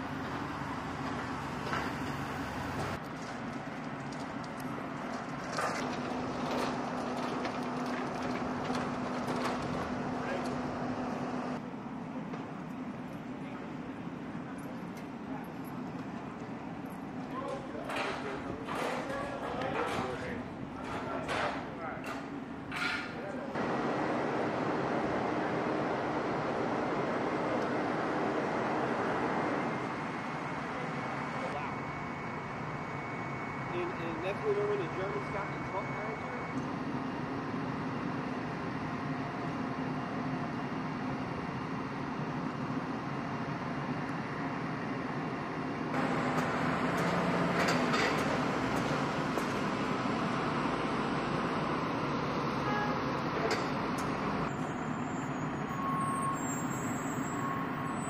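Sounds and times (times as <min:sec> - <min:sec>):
steady machinery noise: 0:00.0 - 0:11.7, 0:14.9 - 0:55.2.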